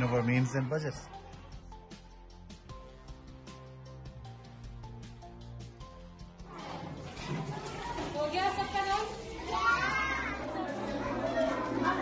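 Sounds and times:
children talking and calling out: 6.4s - 12.0s.

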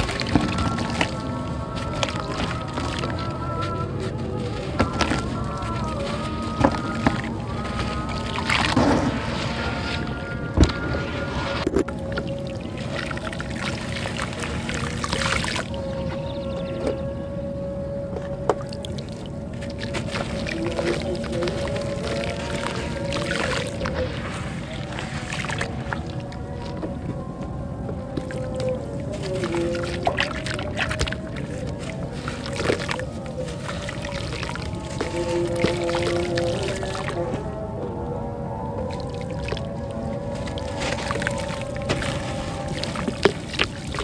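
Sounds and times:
hands squeezing wet clay: 0.0s - 16.4s, 18.3s - 27.2s, 28.0s - 37.4s, 38.8s - 44.0s
background music with held tones: 0.0s - 44.0s
water sloshing and splashing: 0.0s - 44.0s.

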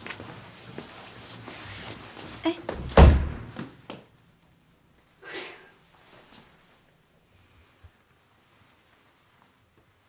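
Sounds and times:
door slamming shut: 2.7s - 3.7s.

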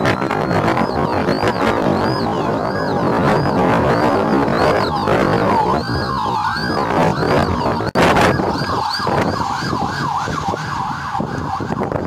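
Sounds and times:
police siren yelping: 0.0s - 12.0s.

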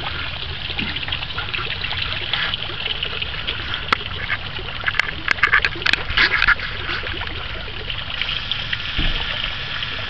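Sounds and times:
fountain water trickling into pond: 0.0s - 10.0s.

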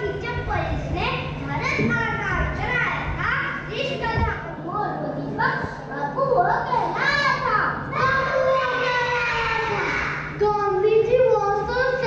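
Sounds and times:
children speaking and calling out: 0.0s - 12.0s.

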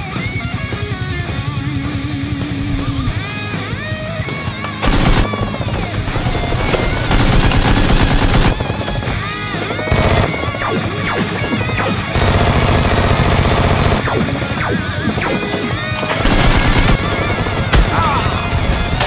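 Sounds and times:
automatic gunfire bursts: 4.7s - 9.0s, 9.8s - 10.7s, 12.1s - 14.2s, 16.2s - 19.0s
toy blaster fire: 4.8s - 8.8s, 16.2s - 19.0s.

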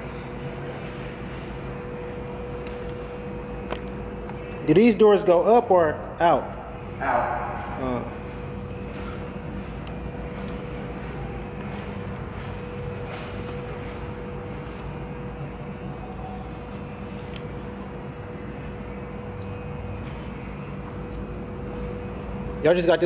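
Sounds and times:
constant mid-pitched hum: 0.0s - 23.0s.

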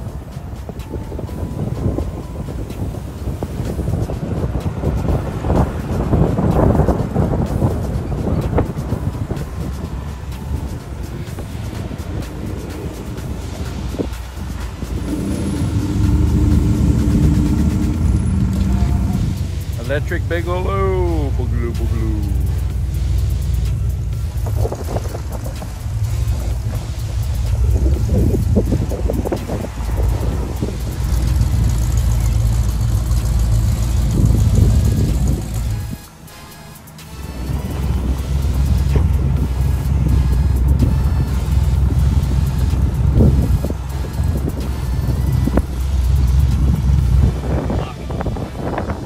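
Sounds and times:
background music: 0.0s - 49.0s
car engines rumbling: 0.0s - 49.0s.

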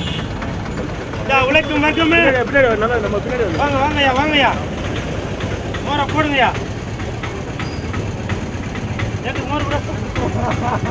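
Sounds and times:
vehicle engine idling: 0.0s - 10.9s.

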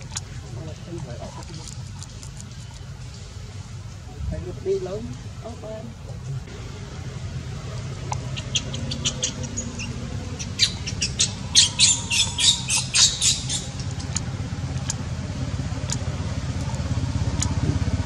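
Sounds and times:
steady low rumble: 0.0s - 18.0s
sharp high-pitched chirps: 8.2s - 14.2s.

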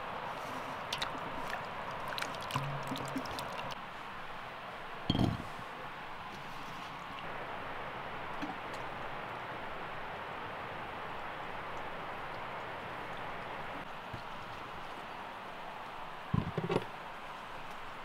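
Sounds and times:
steady outdoor hiss: 0.0s - 18.0s.

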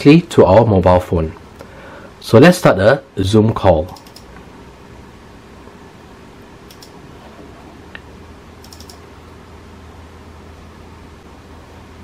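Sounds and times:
low hum and hiss: 0.0s - 12.0s
sharp computer clicks: 3.8s - 4.4s, 6.6s - 7.0s, 8.6s - 9.0s.

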